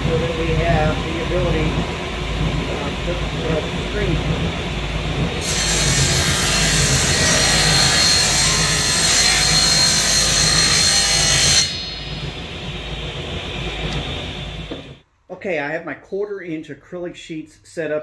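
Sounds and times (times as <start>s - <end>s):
saw motor humming: 0.0s - 15.0s
table saw cutting plywood: 5.4s - 15.0s.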